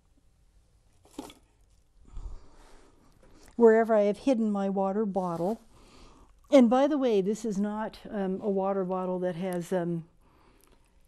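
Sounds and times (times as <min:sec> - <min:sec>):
object handling noise: 0:00.9 - 0:02.3.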